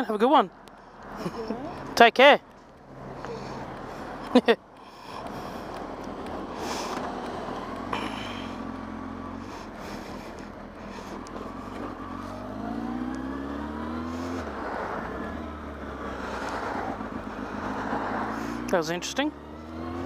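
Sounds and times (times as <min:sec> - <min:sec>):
motorcycle engine accelerating: 0:05.1 - 0:20.0.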